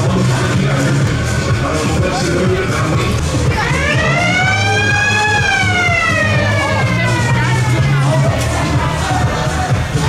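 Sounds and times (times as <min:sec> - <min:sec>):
dance music with bass beat: 0:00.0 - 0:10.0
siren wail: 0:03.6 - 0:07.9.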